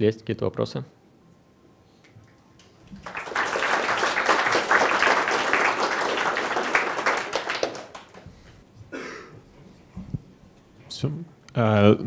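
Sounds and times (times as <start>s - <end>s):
audience applauding: 2.6s - 8.3s.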